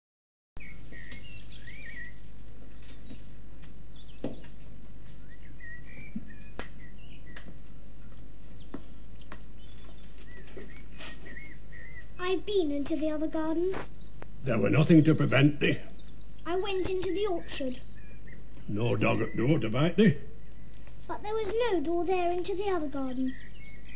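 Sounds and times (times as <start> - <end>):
low hum and hiss: 0.6 - 23.9
small bird chirping: 0.6 - 23.9.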